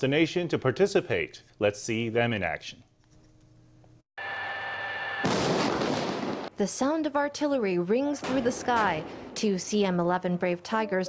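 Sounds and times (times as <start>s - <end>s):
tank gun blast and rumble: 5.2s - 6.5s.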